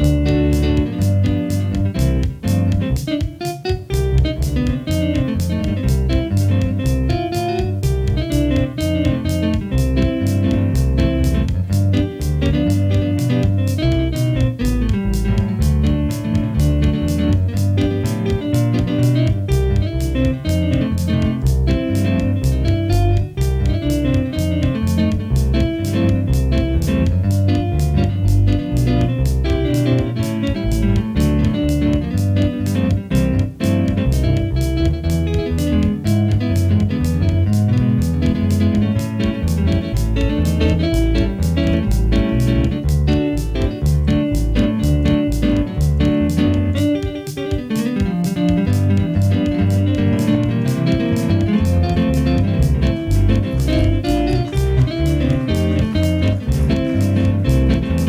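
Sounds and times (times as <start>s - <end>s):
guitar-like synthesizer melody: 0.0s - 58.0s
steady beat and bass line: 0.0s - 58.0s.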